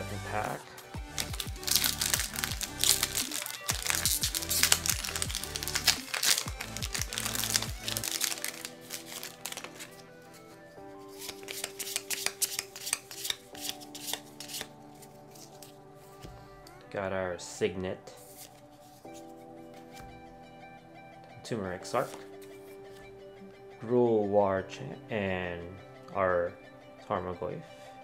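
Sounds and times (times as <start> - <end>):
background music: 0.0 - 28.0
cards rustling: 0.4 - 16.3
plastic wrapper crinkling: 1.1 - 10.1.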